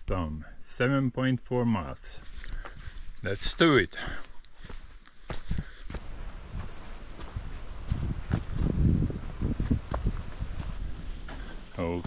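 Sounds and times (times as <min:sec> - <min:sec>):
footsteps on dirt trail: 0:02.2 - 0:12.0
low rumble on microphone: 0:05.5 - 0:12.0.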